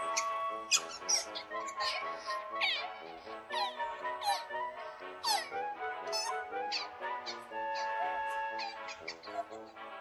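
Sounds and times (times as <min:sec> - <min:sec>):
otter squeaking in high chirps: 0:00.0 - 0:04.5, 0:05.2 - 0:09.4
background music: 0:00.0 - 0:10.0.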